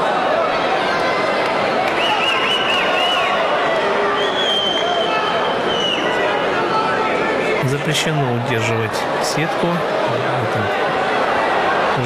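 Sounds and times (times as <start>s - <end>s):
arena crowd shouting and cheering: 0.0s - 12.0s.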